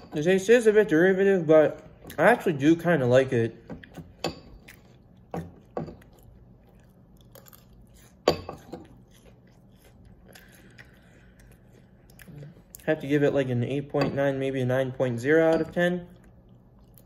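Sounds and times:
person chewing crunchy cereal: 4.6 - 12.9.

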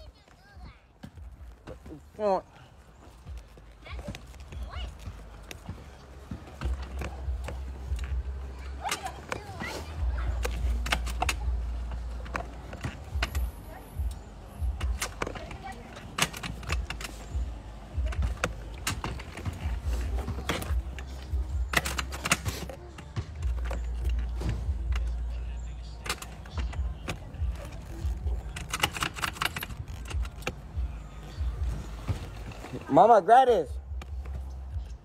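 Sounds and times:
jacket rustling: 14.3 - 35.0.

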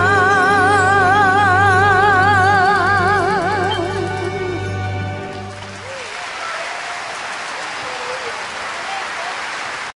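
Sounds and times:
audience applauding: 5.0 - 10.0.

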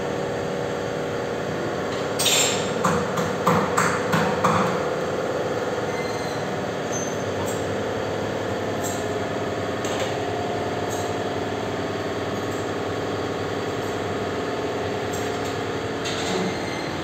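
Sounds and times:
workshop machinery drone: 0.0 - 17.0.

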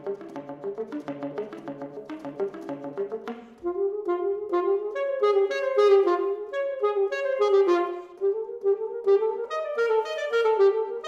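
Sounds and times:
alto saxophone playing: 0.0 - 11.0.

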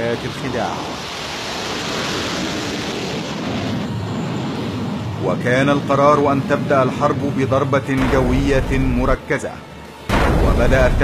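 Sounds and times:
jet engine rushing: 0.0 - 11.0.

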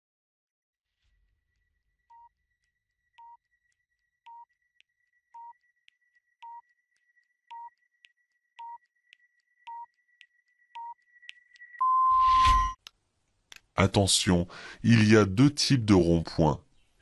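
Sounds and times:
short electronic beeps: 11.7 - 12.8.

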